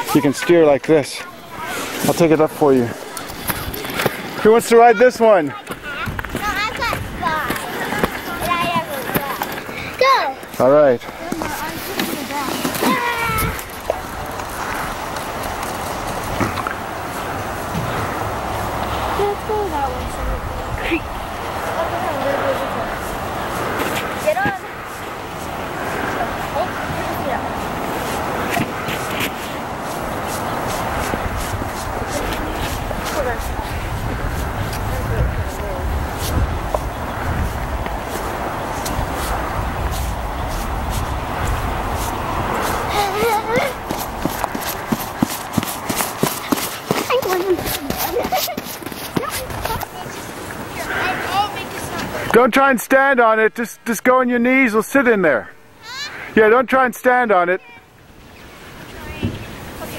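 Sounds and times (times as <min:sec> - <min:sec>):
children shouting: 0:12.7 - 0:13.8.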